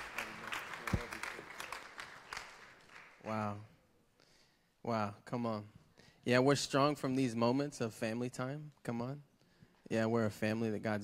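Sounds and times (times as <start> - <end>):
congregation applauding: 0.0 - 3.3.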